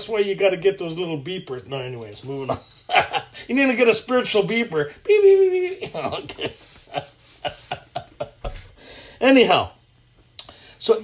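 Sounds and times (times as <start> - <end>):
man laughing softly: 2.4 - 3.5, 5.6 - 8.8.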